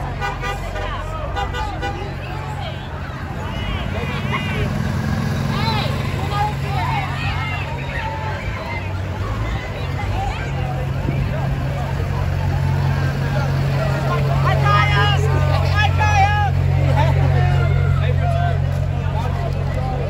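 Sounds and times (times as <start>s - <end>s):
street crowd chatter: 0.0s - 20.0s
truck engine running: 0.0s - 20.0s
voices calling out loudly: 0.0s - 20.0s.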